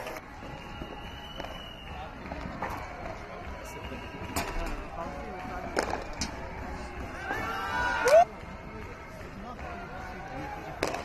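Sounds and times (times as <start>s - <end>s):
murmur of voices: 0.0s - 11.0s
racket striking ball: 10.8s - 11.0s.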